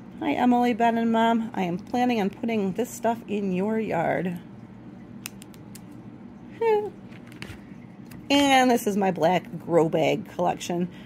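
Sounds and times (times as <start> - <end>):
woman's voice: 0.2 - 4.4, 6.6 - 7.0, 8.3 - 11.0.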